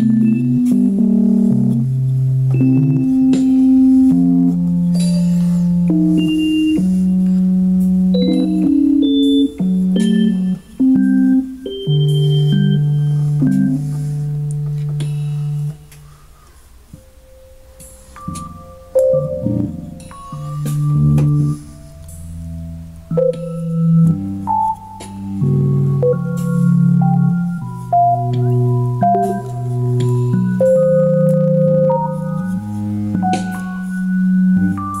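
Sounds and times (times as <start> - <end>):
electronic keyboard low note: 0.0 - 16.2, 16.9 - 35.0.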